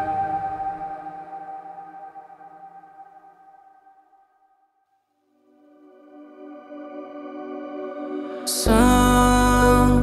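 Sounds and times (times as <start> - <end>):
sustained synthesizer chord: 0.0 - 3.6, 5.5 - 10.0
held synth pad: 0.0 - 3.9.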